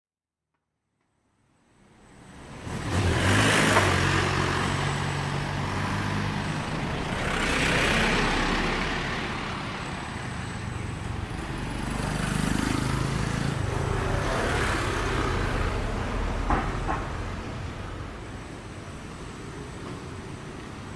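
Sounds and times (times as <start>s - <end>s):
vehicles passing: 1.5s - 20.9s
motor scooters approaching: 1.8s - 20.9s.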